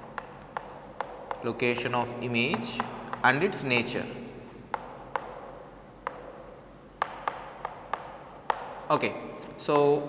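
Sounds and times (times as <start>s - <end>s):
chalk scraping on chalkboard: 0.0s - 9.1s
chalk taps: 0.0s - 10.0s.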